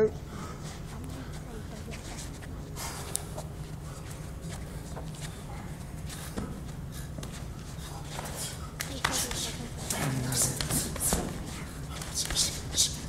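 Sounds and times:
bare feet shuffling on mat: 0:00.5 - 0:12.9
punches slapping against bodies: 0:08.1 - 0:12.9.

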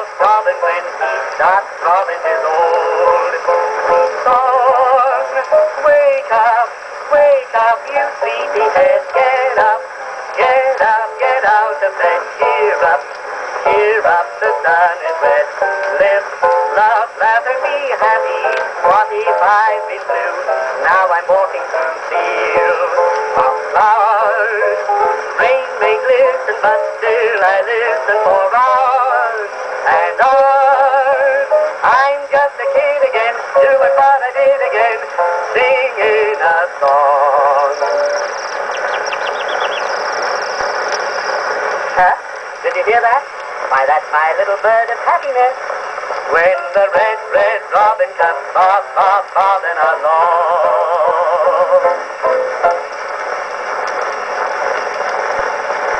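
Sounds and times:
record surface hiss: 0:00.0 - 0:55.9
whistled birdsong melody: 0:37.5 - 0:42.0.

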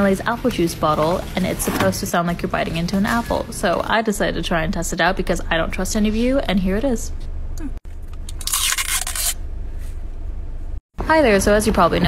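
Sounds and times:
crisp biting crunch: 0:07.9 - 0:09.4.

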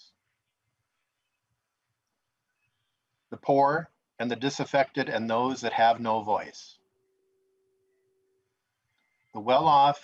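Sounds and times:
faint steady tone: 0:00.0 - 0:10.0.

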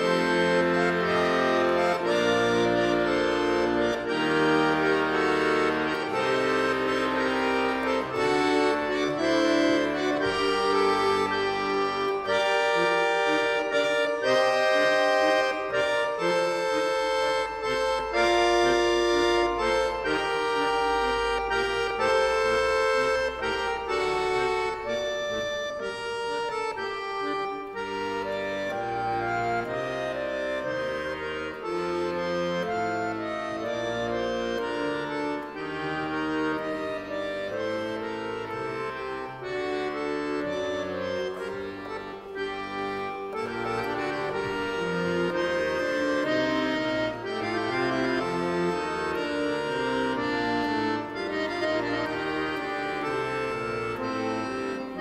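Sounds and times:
accordion music: 0:00.0 - 0:55.0.

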